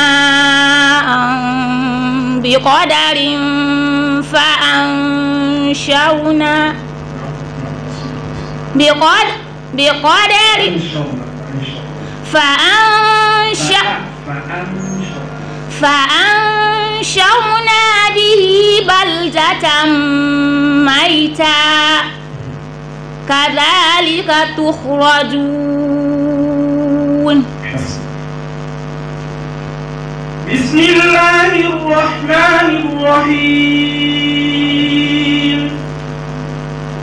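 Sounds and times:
girl reciting melodically: 0:00.0 - 0:06.8, 0:12.3 - 0:13.9, 0:15.7 - 0:22.2, 0:23.3 - 0:27.4
electrical hum of sound system: 0:00.0 - 0:37.0.

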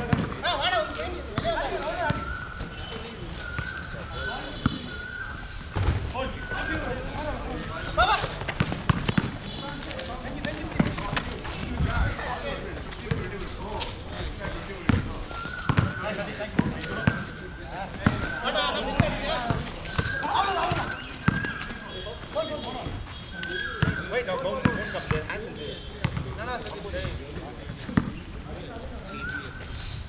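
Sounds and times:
basketball bouncing on concrete: 0:00.0 - 0:00.6, 0:01.3 - 0:02.3, 0:08.2 - 0:11.9, 0:12.8 - 0:13.5, 0:14.4 - 0:17.3, 0:18.0 - 0:21.6, 0:23.8 - 0:25.3, 0:26.0 - 0:26.4, 0:27.8 - 0:28.2
players calling out: 0:00.0 - 0:27.1.

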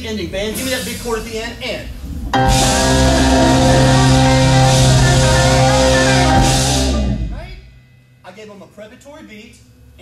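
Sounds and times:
drums and cymbals crashing: 0:02.4 - 0:07.7
electric guitars and keyboard ringing: 0:02.4 - 0:07.7.

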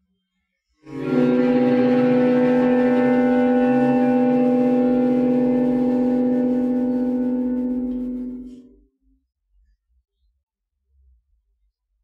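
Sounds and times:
chamber ensemble holding a chord: 0:00.9 - 0:08.7.

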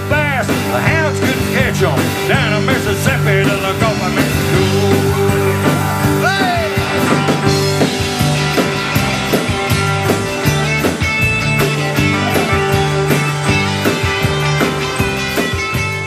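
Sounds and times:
country band instrumental: 0:00.0 - 0:16.0.

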